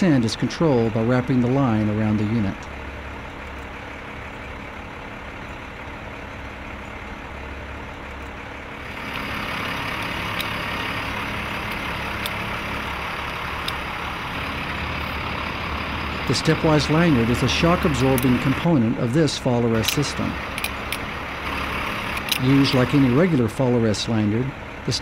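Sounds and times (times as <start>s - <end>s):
outdoor background noise: 0.0s - 25.0s
truck engine idling: 0.0s - 25.0s.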